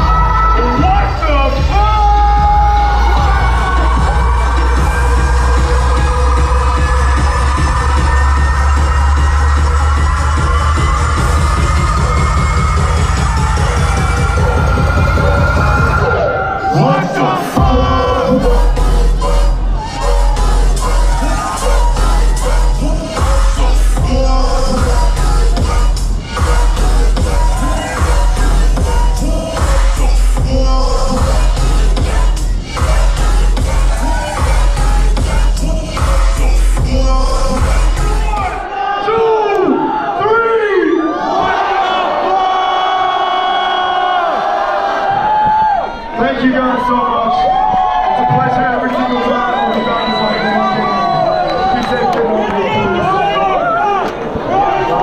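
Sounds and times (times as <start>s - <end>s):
deep bass: 0.0s - 38.7s
dubstep dj set: 0.0s - 39.2s.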